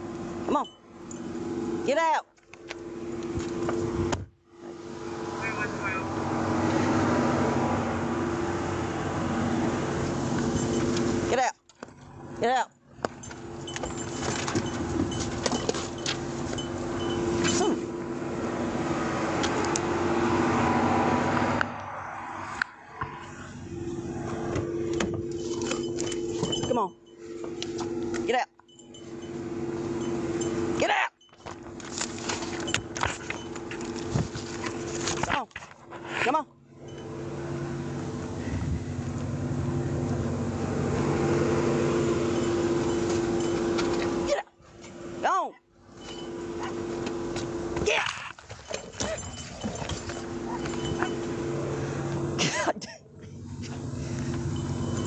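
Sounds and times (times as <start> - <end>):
camera rustling against clothing: 31.6 - 35.2
police car idling: 48.9 - 55.0.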